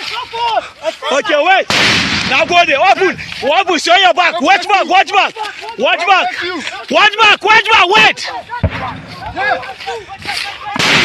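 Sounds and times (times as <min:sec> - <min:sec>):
men shouting: 0:00.0 - 0:01.7, 0:02.3 - 0:11.0
gunshots: 0:01.7 - 0:02.7, 0:08.6 - 0:09.6, 0:10.7 - 0:11.0.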